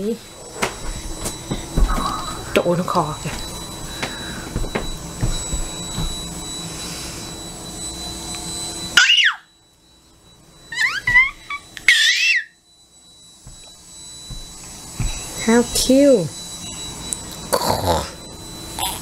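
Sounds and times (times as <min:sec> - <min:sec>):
steady background hum: 0:00.0 - 0:19.0
toddler squealing: 0:09.0 - 0:09.5, 0:10.7 - 0:12.6.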